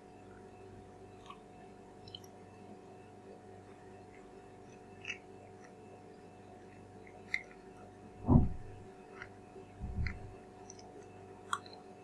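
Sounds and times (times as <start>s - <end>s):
steady low hum: 0.0s - 12.0s
chewing soft food: 0.3s - 2.7s, 3.6s - 8.0s, 8.8s - 12.0s.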